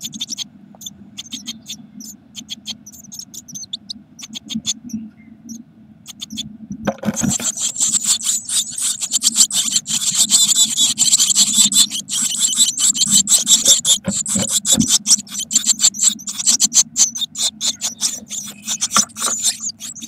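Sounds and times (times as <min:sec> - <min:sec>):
nestlings begging chatter: 0:00.0 - 0:20.0.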